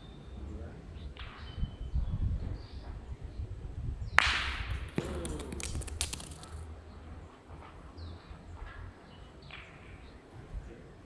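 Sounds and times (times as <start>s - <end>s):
metal ball rolling on gravel: 4.2s - 8.1s.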